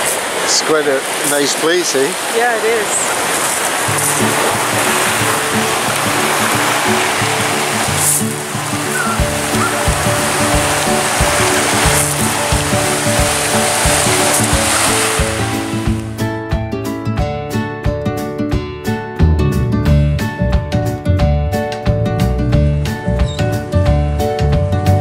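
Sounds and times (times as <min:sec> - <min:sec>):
surf breaking on rocky beach: 0:00.0 - 0:16.2
background music with a beat: 0:03.9 - 0:25.0.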